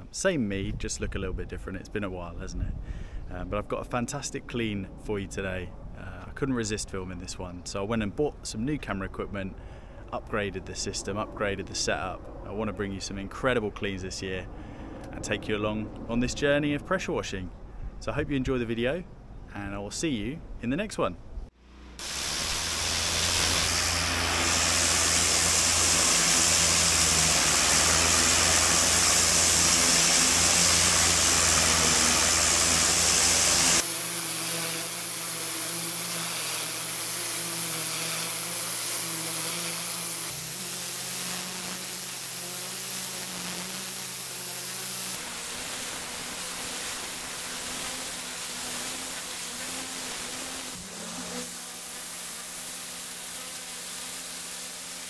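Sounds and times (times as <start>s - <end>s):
low hum: 9.8s - 18.0s, 21.4s - 33.8s
pressure washer spraying stone: 22.0s - 55.0s.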